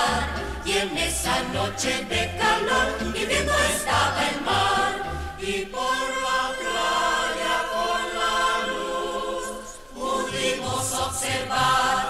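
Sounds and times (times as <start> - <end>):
voices singing with instruments: 0.0 - 12.0.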